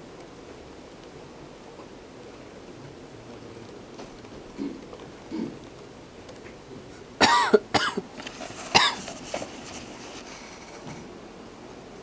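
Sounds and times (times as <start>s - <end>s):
person coughing: 4.6s - 5.6s, 7.2s - 8.0s, 8.7s - 9.1s.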